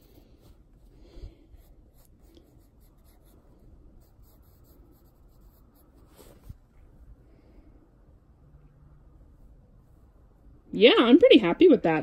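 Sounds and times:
pencil scratching on paper: 0:00.0 - 0:00.7, 0:01.5 - 0:06.6.

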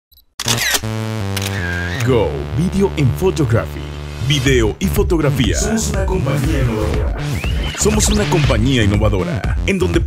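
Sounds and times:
camera shutter click: 0:00.4 - 0:02.1
sustained electronic music notes: 0:00.9 - 0:09.6.

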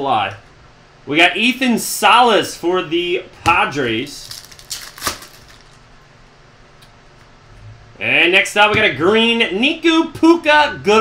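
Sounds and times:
cards handling noise: 0:03.5 - 0:05.9
plastic wrapper ripping: 0:04.1 - 0:05.8.

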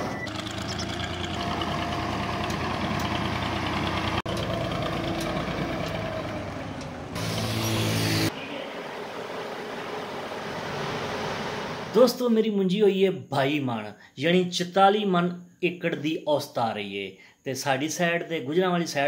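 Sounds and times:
tractor diesel engine running: 0:00.0 - 0:12.0.

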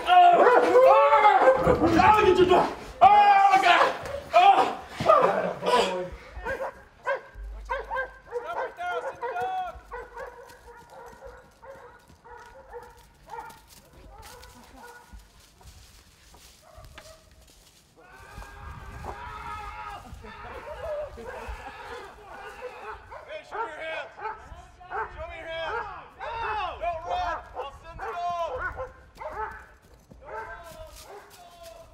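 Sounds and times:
voices: 0:00.0 - 0:11.9, 0:18.0 - 0:29.5
dog barking: 0:00.4 - 0:01.8, 0:05.7 - 0:15.2, 0:16.6 - 0:17.3, 0:21.2 - 0:26.3, 0:27.6 - 0:31.4.

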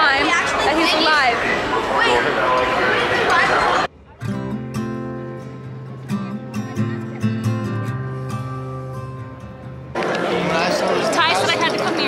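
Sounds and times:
voices chattering: 0:00.0 - 0:12.0
strummed acoustic guitar music: 0:04.2 - 0:12.0.

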